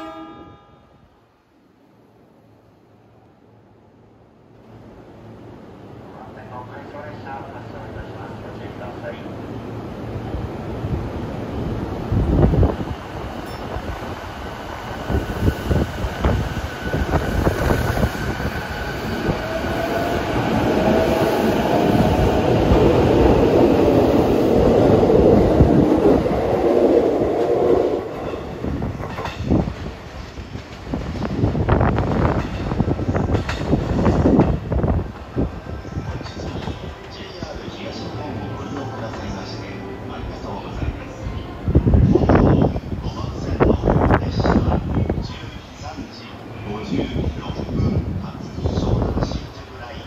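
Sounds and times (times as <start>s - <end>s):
train wheel and car noise: 5.8s - 50.0s
rail clacks: 12.2s - 40.9s.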